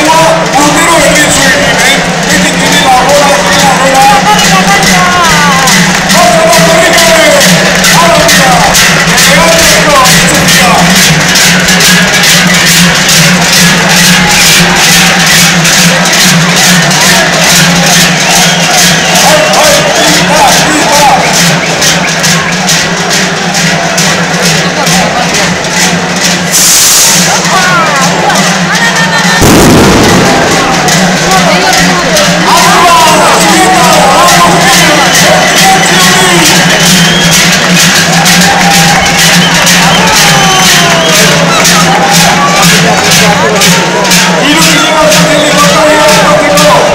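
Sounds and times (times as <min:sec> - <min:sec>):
low ringing of bells: 0:00.0 - 0:26.6, 0:27.2 - 0:46.9
cowbells clanging in unison: 0:00.0 - 0:46.9
crowd voices: 0:00.0 - 0:46.9.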